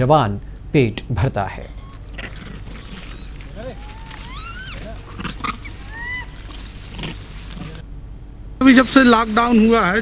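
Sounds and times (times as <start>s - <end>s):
monkeys calling: 1.6s - 7.8s.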